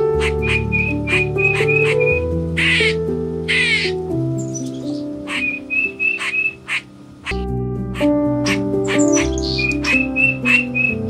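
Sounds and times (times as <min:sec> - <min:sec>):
music with sustained notes: 0:00.0 - 0:11.0
macaw squawks: 0:00.1 - 0:07.4, 0:08.0 - 0:11.0.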